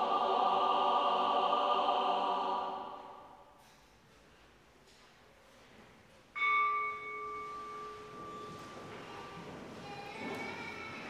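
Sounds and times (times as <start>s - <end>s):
bell ringing: 6.4s - 9.4s.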